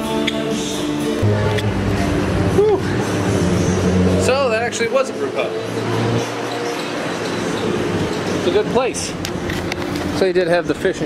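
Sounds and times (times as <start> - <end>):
passing road vehicle: 1.2 - 10.8.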